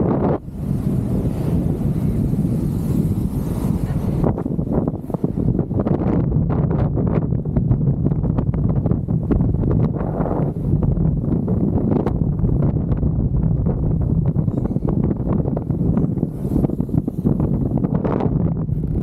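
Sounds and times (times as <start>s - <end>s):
kite buggy rolling over sand: 0.0s - 19.0s
wind buffeting microphone: 0.0s - 19.0s.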